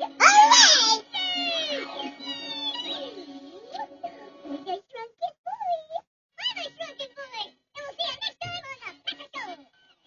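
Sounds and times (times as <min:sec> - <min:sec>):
squeaky cartoon voice: 0:00.2 - 0:03.2.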